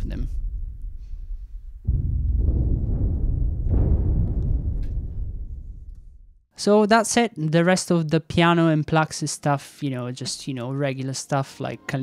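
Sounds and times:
deep low percussion booms: 0:00.0 - 0:06.5.

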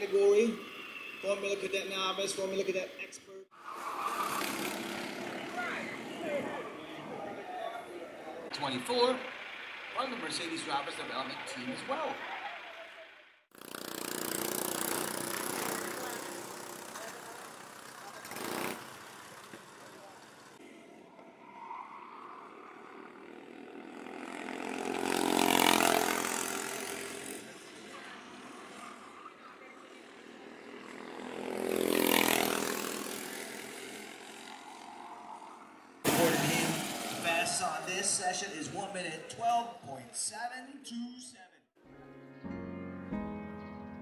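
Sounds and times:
kart engines passing by: 0:03.4 - 0:39.4
steady engine drone: 0:04.9 - 0:13.2.

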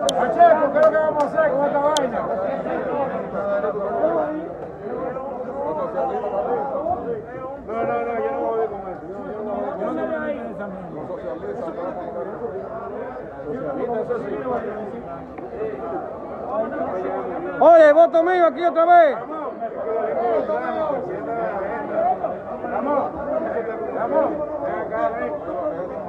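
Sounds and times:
many voices talking: 0:00.0 - 0:26.0.

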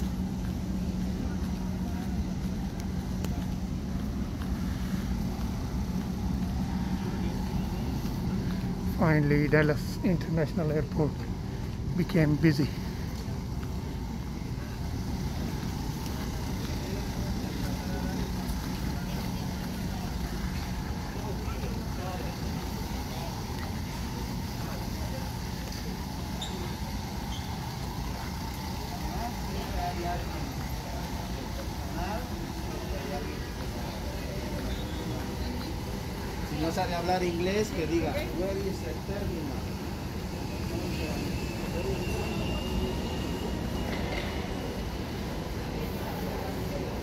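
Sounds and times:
murmur of distant voices: 0:00.0 - 0:47.0
steady low hum: 0:00.0 - 0:47.0.

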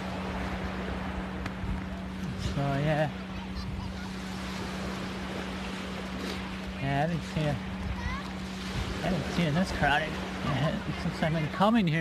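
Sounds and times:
wind rumbling on microphone: 0:00.0 - 0:11.1
constant low hum: 0:00.0 - 0:12.0
surf washing on shore: 0:00.0 - 0:12.0.

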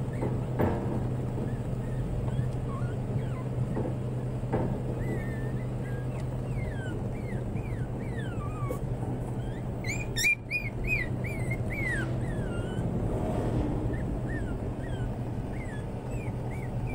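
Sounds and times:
puppies yipping: 0:00.0 - 0:13.2, 0:13.8 - 0:16.9
puppies whimpering: 0:00.0 - 0:16.9
steady low hum: 0:00.0 - 0:16.9.

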